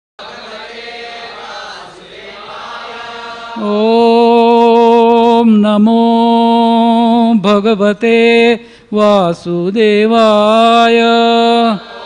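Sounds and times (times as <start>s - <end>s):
voices chanting in held tones: 0.2s - 7.2s, 10.1s - 12.0s.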